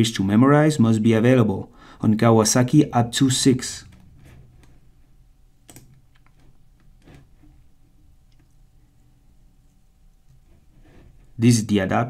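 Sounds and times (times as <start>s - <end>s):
low steady room hum: 0.0s - 12.0s
computer mouse clicks: 5.6s - 7.2s.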